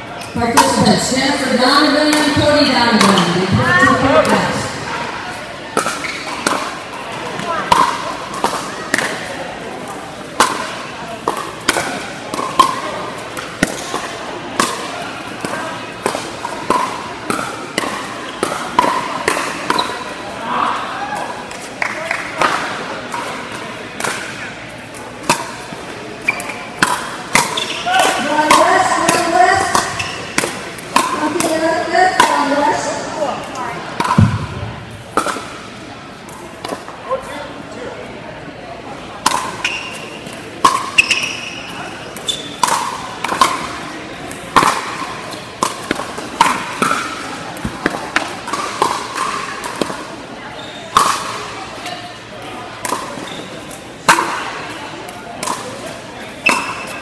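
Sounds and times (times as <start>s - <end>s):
background chatter: 0.0s - 57.0s
paddles hitting plastic ball: 21.5s - 32.6s, 33.4s - 35.5s, 42.2s - 50.1s, 50.9s - 51.4s.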